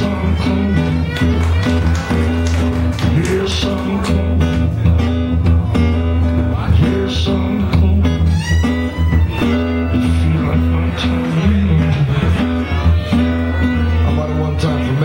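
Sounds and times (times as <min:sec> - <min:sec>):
bass line: 0:00.0 - 0:15.0
blues guitar: 0:00.0 - 0:15.0
harmonica: 0:08.0 - 0:10.9, 0:12.2 - 0:15.0.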